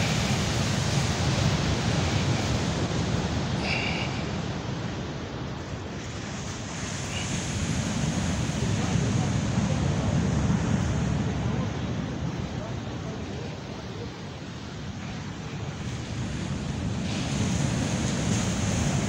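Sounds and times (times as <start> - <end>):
ocean surf on sandy beach: 0.0 - 19.0
wind rumbling on microphone: 0.0 - 19.0.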